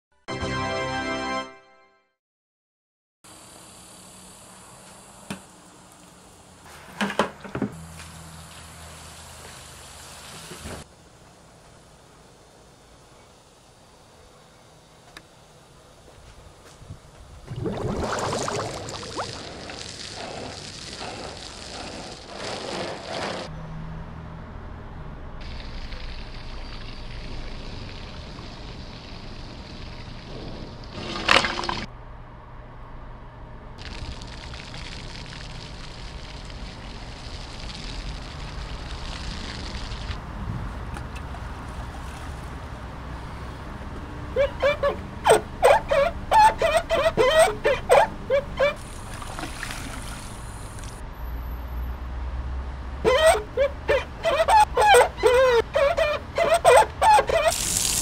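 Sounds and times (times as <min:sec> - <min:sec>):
water running from hose: 0:08.1 - 0:10.8, 0:17.5 - 0:23.4, 0:33.8 - 0:40.2, 0:45.9 - 0:51.0, 0:53.3 - 0:58.0
hose spraying onto car: 0:18.9 - 0:23.5, 0:48.6 - 0:51.0, 0:57.1 - 0:58.0.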